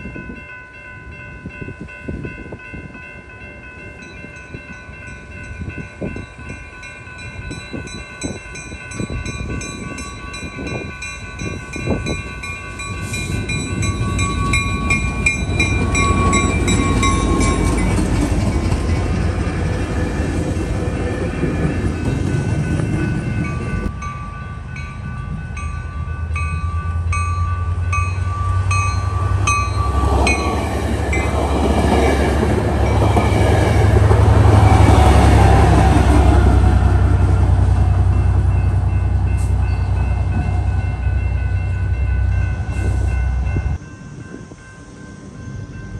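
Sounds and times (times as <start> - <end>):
diesel locomotive engine: 0.0 - 45.9
railroad crossing bell ringing: 0.0 - 45.9
train wheels rumbling on rails: 0.0 - 45.9.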